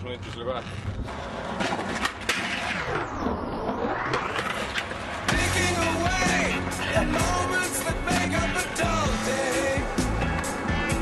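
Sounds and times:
skateboard wheels rolling on concrete: 0:00.0 - 0:11.0
skateboard scraping and clacking: 0:00.2 - 0:08.9
music: 0:05.3 - 0:11.0.

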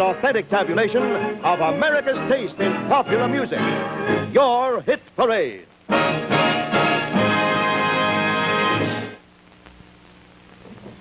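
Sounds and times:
orchestral theme music: 0:00.0 - 0:04.4, 0:05.9 - 0:09.2
faint low hum: 0:08.4 - 0:11.0.

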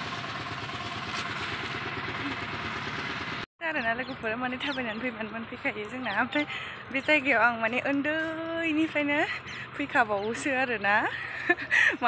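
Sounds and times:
motorcycle engine running: 0:00.0 - 0:11.9.

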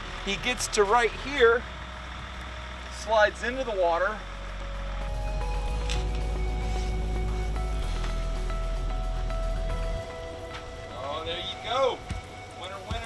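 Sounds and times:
steady deep bass: 0:00.0 - 0:13.0
held synth notes changing pitch: 0:04.3 - 0:12.6.

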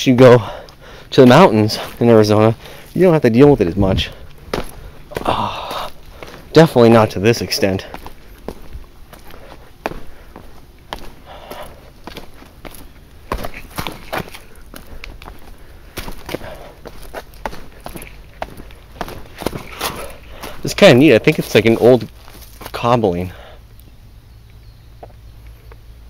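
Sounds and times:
heavy breathing: 0:00.3 - 0:03.0, 0:04.0 - 0:06.6, 0:07.5 - 0:20.7, 0:23.2 - 0:23.7
footsteps on stone and dry leaves: 0:00.5 - 0:23.4.

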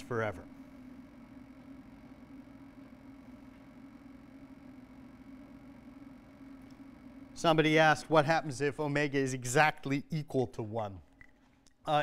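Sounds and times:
low hum with light hiss: 0:00.0 - 0:12.0.

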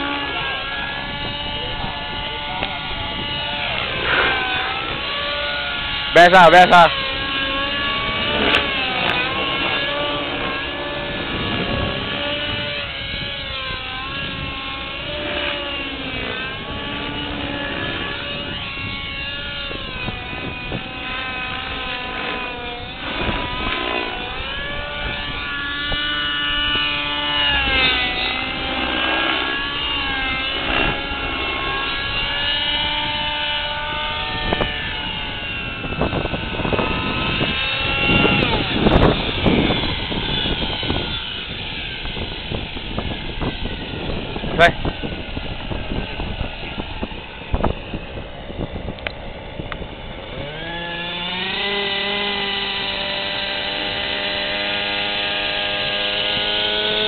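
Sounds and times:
model helicopter engine and rotor: 0:00.0 - 0:57.0.

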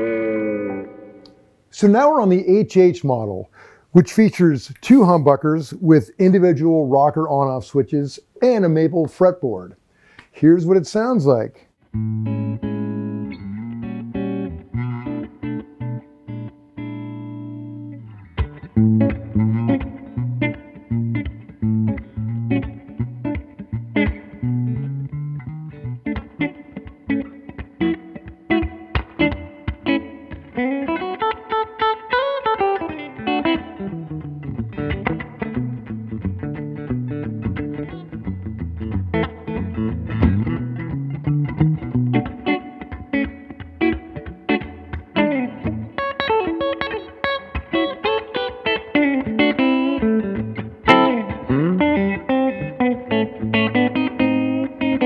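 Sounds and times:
clean electric guitar playing: 0:00.0 - 0:03.4, 0:11.8 - 0:55.0.

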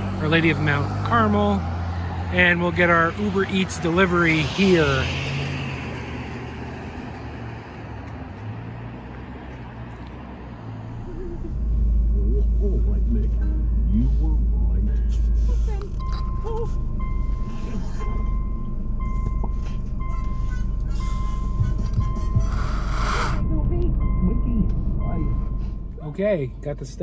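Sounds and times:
low steady rumble: 0:10.9 - 0:27.0
car warning chime dinging: 0:14.9 - 0:26.6.

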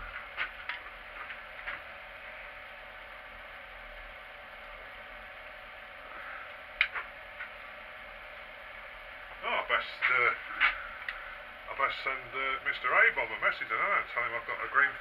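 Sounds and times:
workshop hum: 0:00.0 - 0:15.0.

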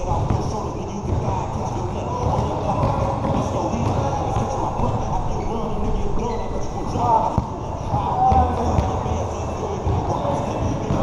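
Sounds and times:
basketball bouncing on hard court: 0:00.0 - 0:05.2, 0:06.9 - 0:11.0
players' voices: 0:00.0 - 0:11.0.

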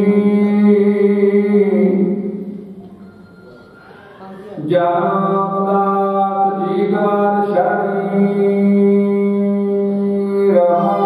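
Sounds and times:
man chanting into microphone: 0:00.0 - 0:02.6, 0:04.6 - 0:11.0.

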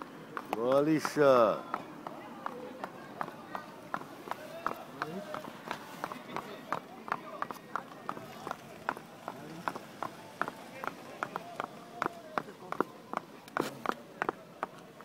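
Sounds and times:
faint voices: 0:00.0 - 0:15.0
horse hooves clopping on asphalt: 0:00.0 - 0:15.0.

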